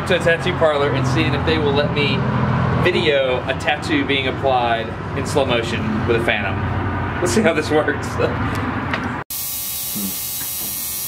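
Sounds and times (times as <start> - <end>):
tattoo machine buzzing: 9.3 - 11.0.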